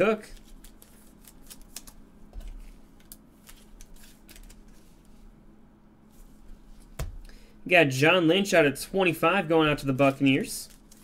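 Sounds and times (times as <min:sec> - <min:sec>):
cards rustling and sliding: 0:00.3 - 0:05.2.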